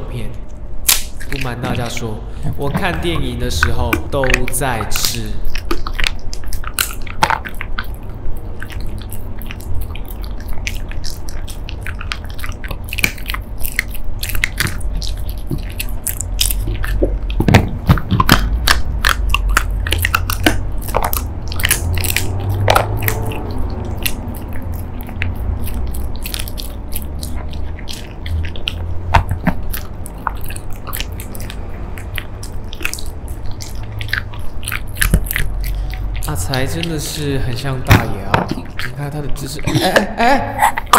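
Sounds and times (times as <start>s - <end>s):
dog chewing crunchy jerky: 0.0s - 40.9s.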